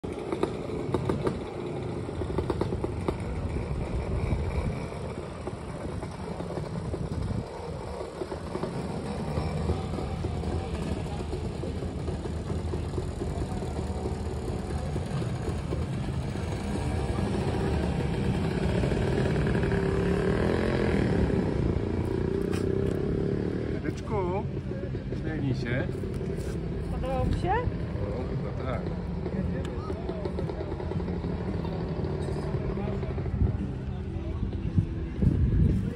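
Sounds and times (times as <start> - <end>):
people's voices: 0.0 - 35.9.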